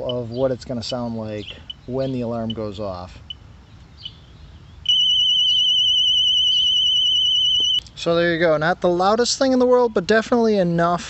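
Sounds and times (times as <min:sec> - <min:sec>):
mower alarm warbling tone: 0:04.9 - 0:07.8.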